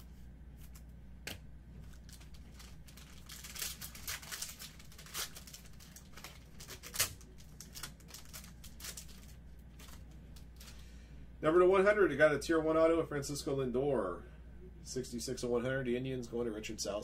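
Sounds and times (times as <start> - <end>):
foil wrapper crinkling and tearing: 1.8 - 10.8.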